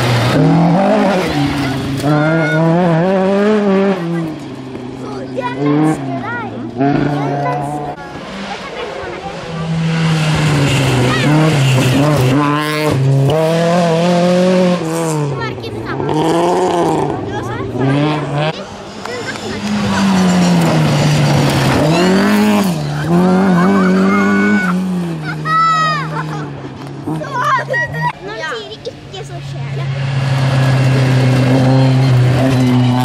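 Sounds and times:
rally car engine revving: 0.0s - 33.0s.

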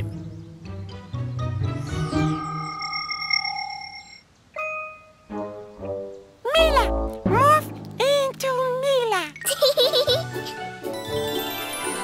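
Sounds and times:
chime-like tones: 1.7s - 5.3s.

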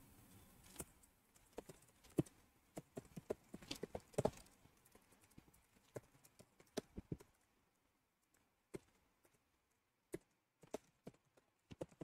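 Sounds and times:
typing on a computer keyboard: 10.1s - 12.0s.

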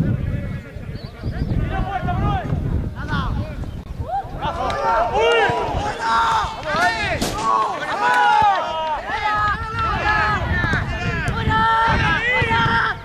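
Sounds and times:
voices shouting and yelling: 0.0s - 13.0s.

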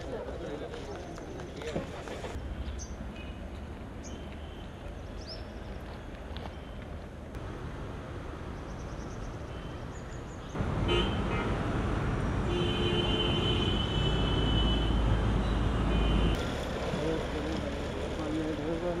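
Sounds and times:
road traffic: 0.0s - 19.0s
vehicle horn: 10.8s - 11.7s, 12.5s - 15.1s, 15.8s - 16.4s.

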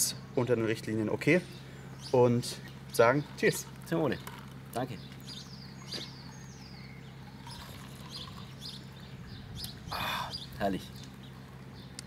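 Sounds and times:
small birds chirping: 0.0s - 12.0s
steady low hum: 0.0s - 12.0s.

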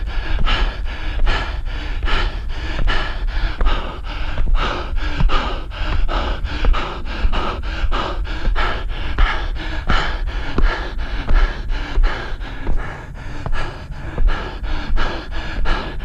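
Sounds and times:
low rumble: 0.0s - 16.0s
person panting hard: 0.0s - 16.0s.

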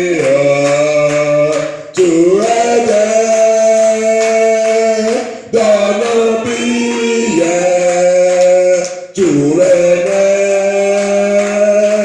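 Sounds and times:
voices singing worship song: 0.0s - 12.0s.

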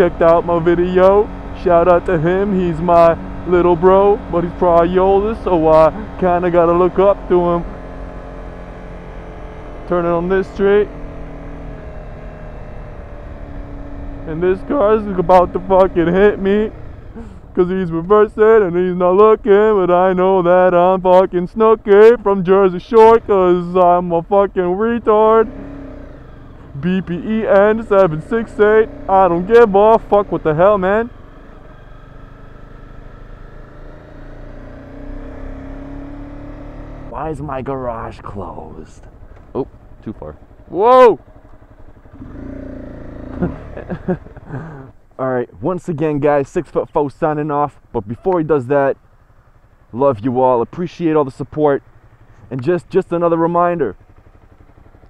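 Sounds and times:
motorcycle engine running: 0.0s - 55.0s
road rumble: 0.0s - 55.0s
person speaking: 26.7s - 31.1s, 37.1s - 41.2s.

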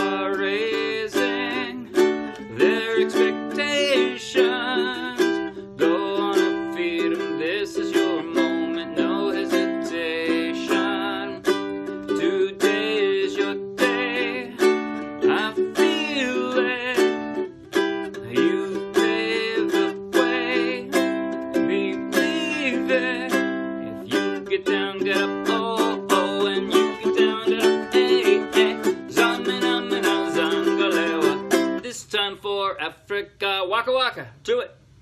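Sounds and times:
ukulele strumming: 0.0s - 32.3s
man singing: 0.0s - 33.8s.

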